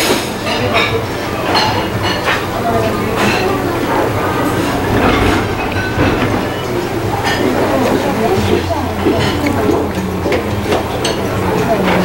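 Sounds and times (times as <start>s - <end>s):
restaurant background rumble: 0.0s - 12.0s
tableware noises: 0.5s - 7.4s.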